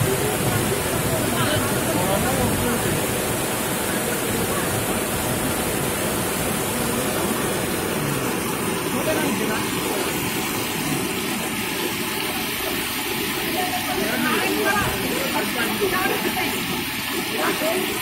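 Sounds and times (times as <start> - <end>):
floodwater rushing down a street: 0.0 - 18.0.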